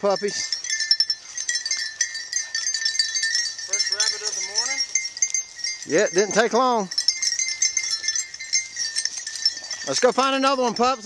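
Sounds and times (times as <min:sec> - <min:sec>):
collar bells jingling: 0:00.0 - 0:11.0.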